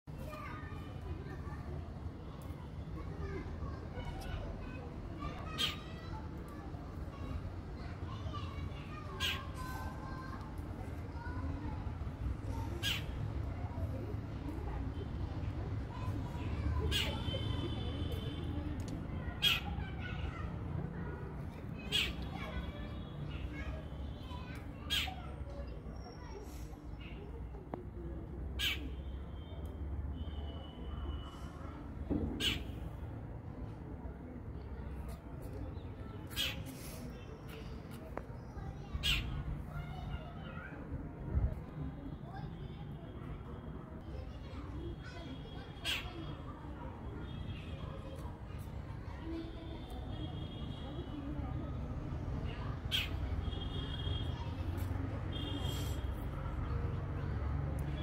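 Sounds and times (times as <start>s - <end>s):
distant children's voices: 0.0s - 58.0s.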